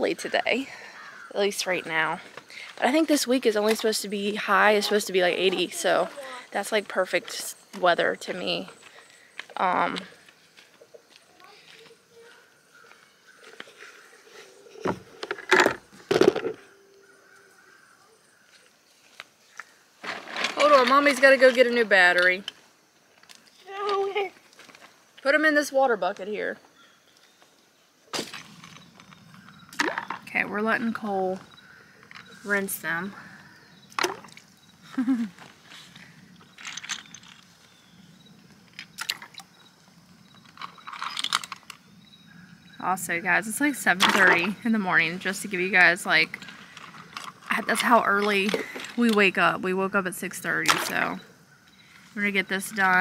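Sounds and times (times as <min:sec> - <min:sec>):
woman speaking: 0:00.0 - 0:08.8, 0:09.6 - 0:10.1, 0:20.6 - 0:22.5, 0:25.2 - 0:26.6, 0:30.3 - 0:31.4, 0:32.4 - 0:33.3, 0:42.8 - 0:46.4, 0:47.5 - 0:51.2, 0:52.2 - 0:53.0
water sloshing in plastic bucket: 0:28.2 - 0:30.4, 0:33.9 - 0:34.5.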